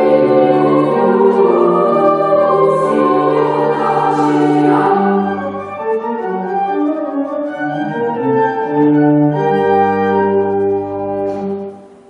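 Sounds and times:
children's choir singing: 0.0 - 6.4.

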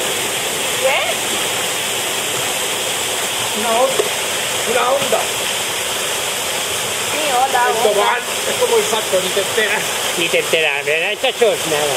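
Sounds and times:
waterfall rushing: 0.0 - 11.9.

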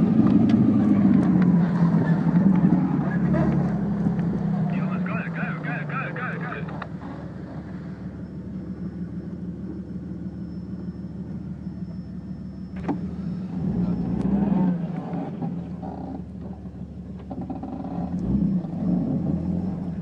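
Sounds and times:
car engine droning: 0.0 - 20.0.

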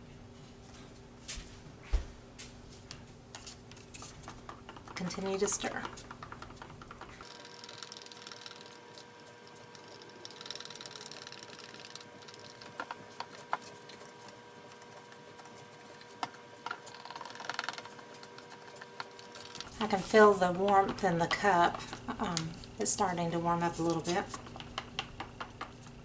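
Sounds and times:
stick scraping plastic cup: 3.4 - 19.8.

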